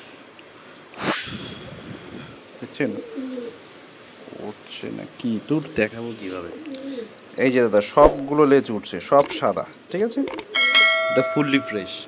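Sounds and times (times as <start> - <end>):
pigeon cooing: 2.8 - 3.6, 6.2 - 8.3, 9.2 - 9.9.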